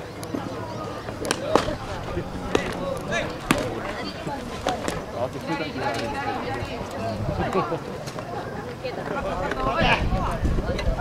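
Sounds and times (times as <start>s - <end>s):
baseballs being hit and caught: 1.1s - 6.1s
players shouting: 1.1s - 6.8s.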